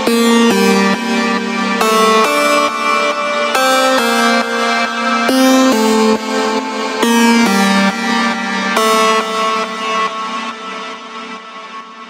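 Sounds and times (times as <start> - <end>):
trance synth melody: 0.0 - 11.6.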